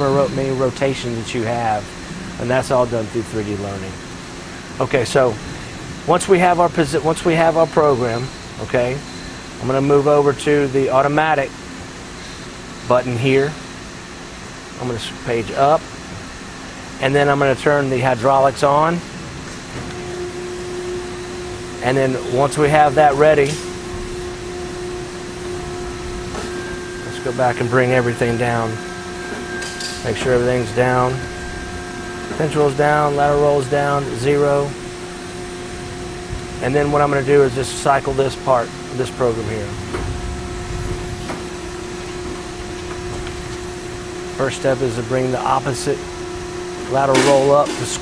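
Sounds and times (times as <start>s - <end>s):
hydraulic power unit humming: 0.0s - 48.0s.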